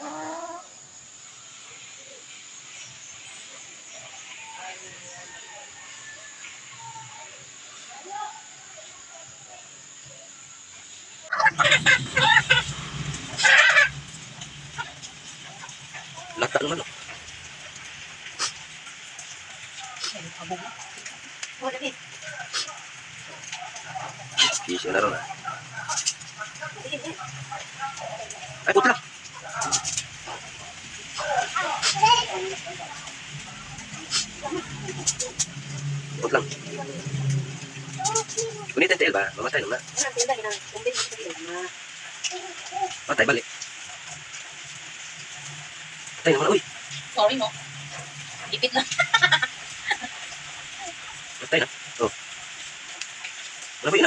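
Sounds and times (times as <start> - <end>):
chicken calling: 11.2 - 17.3, 23.7 - 26.2
low hum: 11.3 - 19.2, 26.7 - 40.2.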